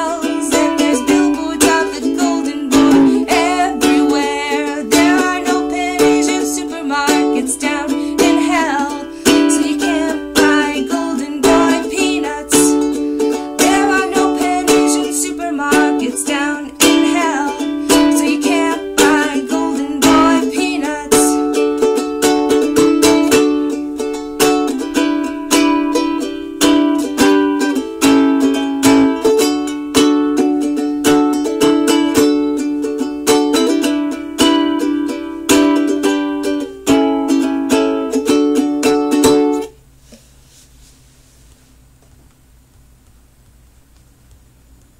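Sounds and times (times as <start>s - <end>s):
person singing: 0.0s - 23.5s
ukulele strumming chords: 0.0s - 39.8s.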